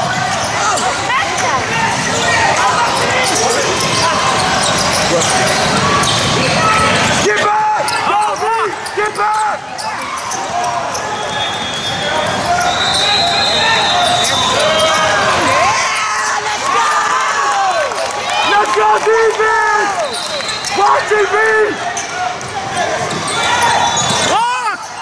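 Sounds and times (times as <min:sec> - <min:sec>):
sneakers squeaking: 0:00.0 - 0:16.4, 0:19.9 - 0:25.0
voices of players and spectators: 0:00.0 - 0:25.0.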